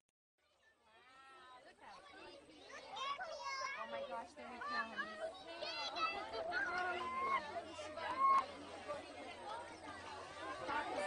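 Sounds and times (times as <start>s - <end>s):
voices chattering: 0.4s - 11.0s.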